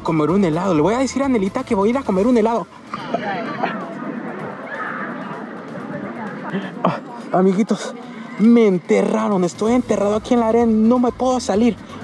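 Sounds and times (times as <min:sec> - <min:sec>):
faint indistinct voices: 0:02.6 - 0:09.7.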